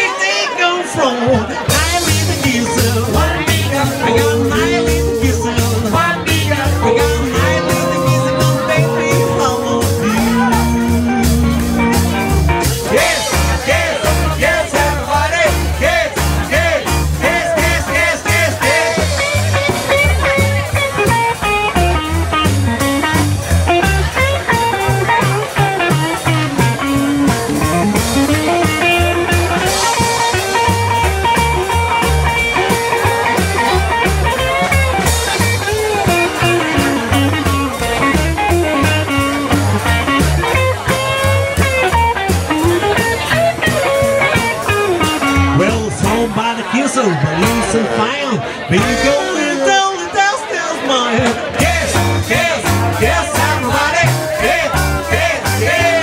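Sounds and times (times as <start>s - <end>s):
drums: 1.2s - 50.0s, 51.2s - 56.0s
electric guitar: 1.6s - 46.4s
double bass: 1.6s - 49.2s, 51.3s - 56.0s.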